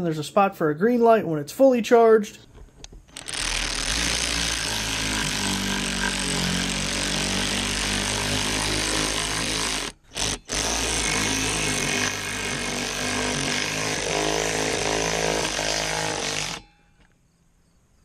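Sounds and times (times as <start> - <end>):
cordless ratchet whirring: 3.1 - 14.8.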